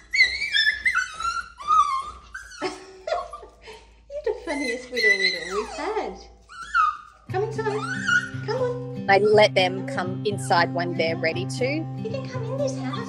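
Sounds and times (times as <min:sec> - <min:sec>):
puppy whimpering and yipping: 0:00.0 - 0:03.6, 0:04.4 - 0:08.6
woman talking in high voice: 0:04.2 - 0:06.3, 0:07.3 - 0:13.0.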